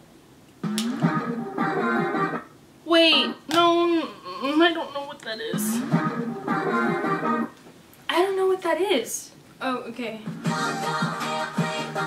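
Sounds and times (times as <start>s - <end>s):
pop instrumental backing: 0.6s - 2.5s, 5.5s - 7.6s, 10.3s - 12.0s
person singing: 10.4s - 12.0s.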